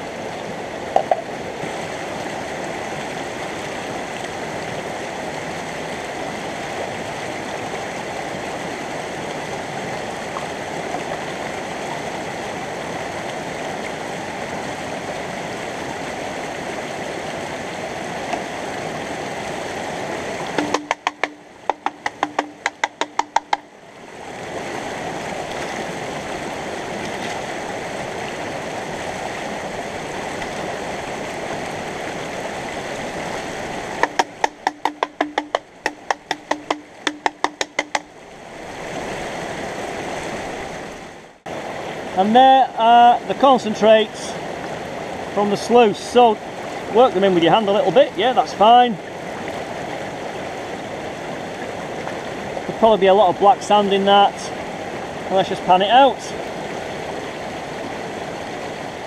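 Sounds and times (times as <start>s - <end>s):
stream rushing: 0.0s - 59.0s
rapid sharp clicks: 20.6s - 23.6s, 34.0s - 38.1s
low steady tone: 20.6s - 23.8s.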